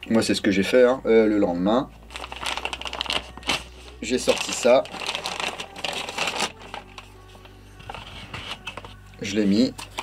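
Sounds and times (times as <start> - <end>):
soft background music: 0.0 - 10.0
plastic bag crinkling: 2.0 - 7.2.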